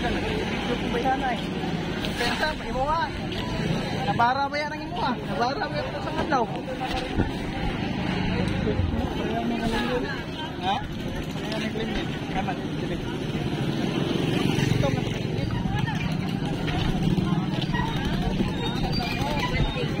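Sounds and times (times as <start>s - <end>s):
vehicle engine rumble: 0.0s - 20.0s.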